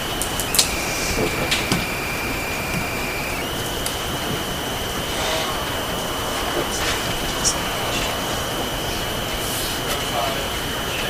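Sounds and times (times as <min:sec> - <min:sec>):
audio feed hiss: 0:00.0 - 0:11.0
high electrical whine: 0:00.0 - 0:11.0
faint clicks: 0:00.2 - 0:05.5.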